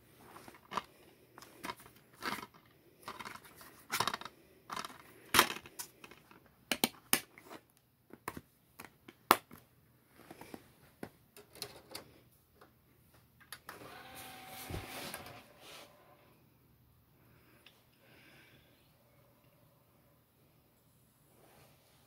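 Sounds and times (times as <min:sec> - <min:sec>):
plastic case clicks and snaps: 0:05.4 - 0:07.3.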